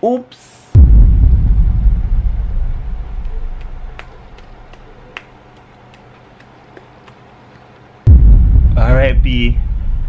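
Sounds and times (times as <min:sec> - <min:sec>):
deep rumbling boom: 0:00.8 - 0:04.7, 0:08.1 - 0:10.0.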